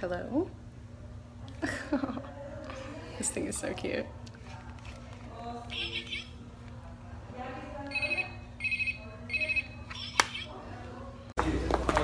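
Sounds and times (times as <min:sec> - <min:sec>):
toy phone electronic ringing: 0:05.7 - 0:06.4, 0:07.9 - 0:10.6.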